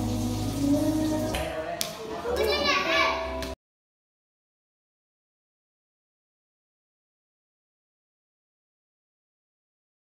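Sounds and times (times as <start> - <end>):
background music: 0.0 - 3.6
children's voices playing: 1.6 - 3.6
child's high-pitched voice: 2.2 - 3.4.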